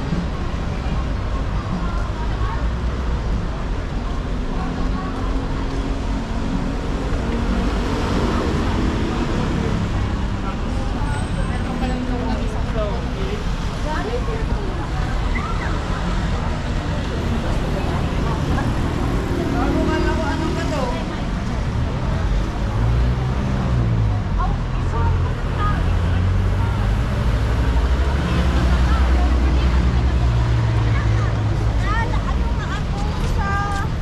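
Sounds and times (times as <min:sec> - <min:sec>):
motor traffic: 0:00.0 - 0:34.0
passers-by talking: 0:00.0 - 0:34.0
vehicle engine drone: 0:00.0 - 0:34.0.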